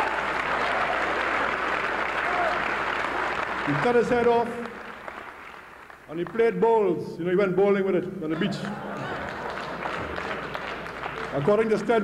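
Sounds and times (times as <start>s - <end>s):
audience applauding: 0.0s - 6.6s, 8.5s - 12.0s.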